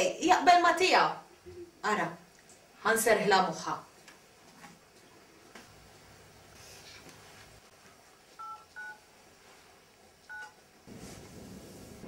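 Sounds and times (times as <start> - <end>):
phone keypad dialing beeps: 8.4 - 9.0, 10.3 - 10.6.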